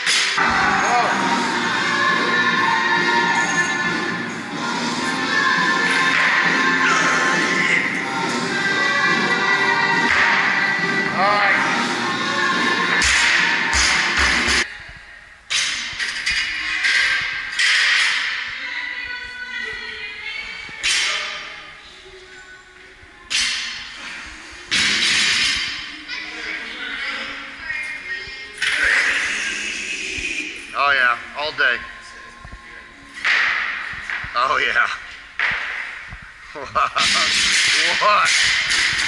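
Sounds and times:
music with vocals: 0.0 - 14.7, 18.1 - 36.6.

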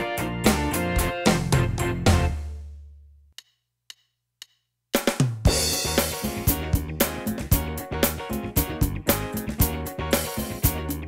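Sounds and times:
band backing track: 0.0 - 2.5, 5.4 - 11.0
electronic drum kit groove: 0.0 - 2.7, 3.4 - 11.0.

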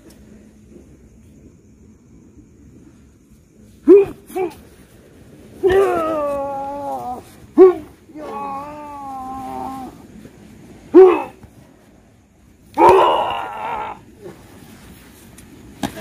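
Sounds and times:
loud rough yell: 5.6 - 10.0, 10.9 - 11.4, 12.8 - 14.1
men wailing cries: 5.6 - 10.0, 12.8 - 14.1.

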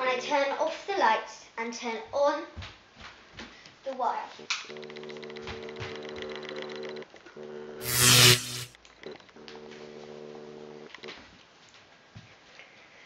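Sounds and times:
electrical inverter buzz: 7.5 - 8.8
loud brief rushing noise: 7.8 - 8.7.

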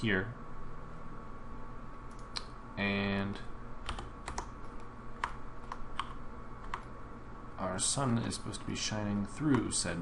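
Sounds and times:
faint steady hum: 0.0 - 10.0
computer keys clicking: 3.8 - 6.9, 9.5 - 9.7.

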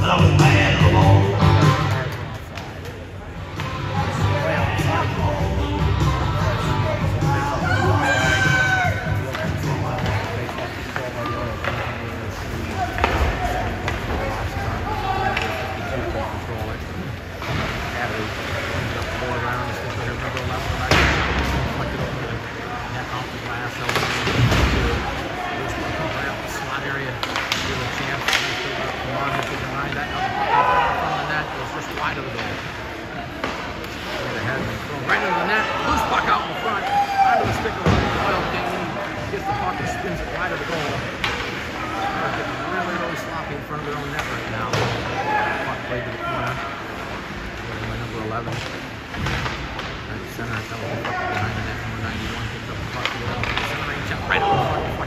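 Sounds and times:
steady rink noise: 0.0 - 55.0
indistinct shouting voices: 4.1 - 9.2
hockey sticks and puck cracking: 8.2 - 31.3, 31.9 - 43.0, 43.9 - 45.4, 46.4 - 55.0.

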